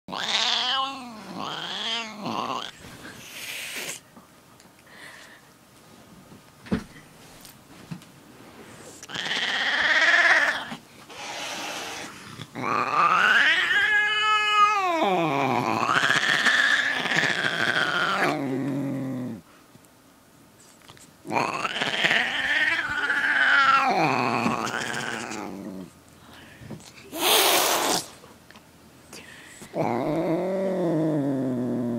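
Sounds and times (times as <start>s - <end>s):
cat yowling: 11.3s - 15.1s.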